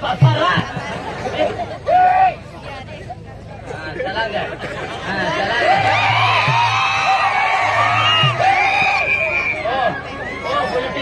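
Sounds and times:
crowd chatter: 0.0s - 11.0s.

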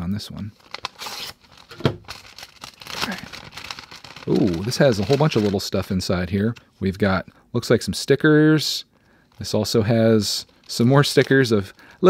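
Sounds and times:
paper rustling and crinkling: 0.6s - 5.8s.

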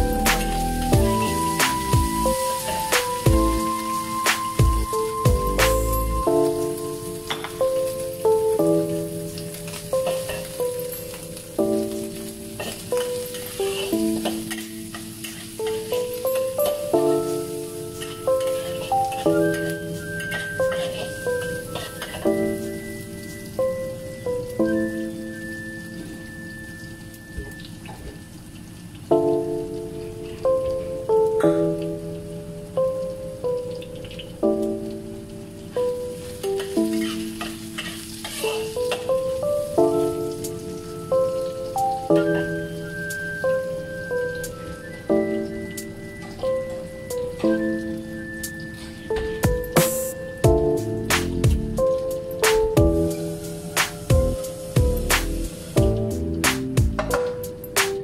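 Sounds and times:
instrumental background music: 0.0s - 28.4s, 29.0s - 58.0s
meat sizzling in a wok: 0.0s - 28.8s, 33.4s - 56.7s
metal spatula scraping a pan: 36.9s - 38.9s.

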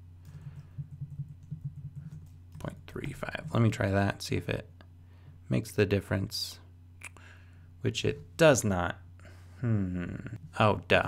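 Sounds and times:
steady low hum: 0.0s - 11.0s
keyboard typing: 0.2s - 2.8s.

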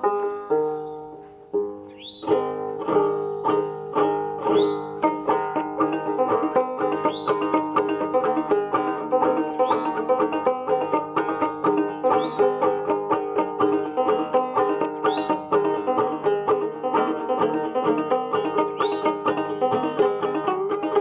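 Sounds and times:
banjo plucking with drone: 0.0s - 21.0s.

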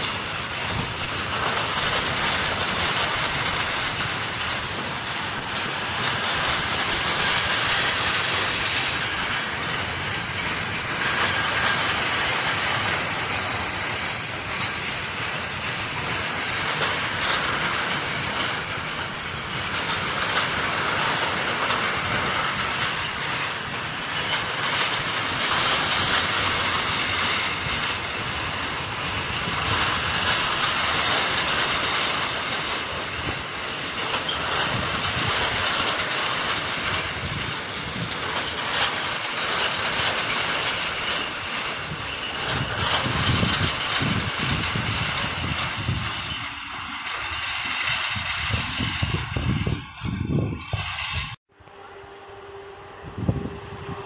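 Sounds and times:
wheels clicking over rail joints: 0.0s - 51.4s
train wheels rumbling on rail: 0.0s - 54.0s.

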